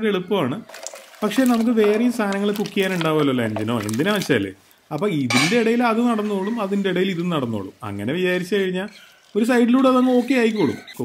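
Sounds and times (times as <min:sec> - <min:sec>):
man talking: 0:00.0 - 0:11.0
metal lid clinking on pot: 0:05.3 - 0:05.8.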